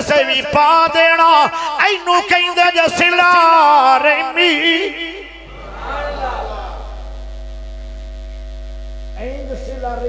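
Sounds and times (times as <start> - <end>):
electrical mains hum: 2.1 - 10.0
man speaking: 9.2 - 10.0.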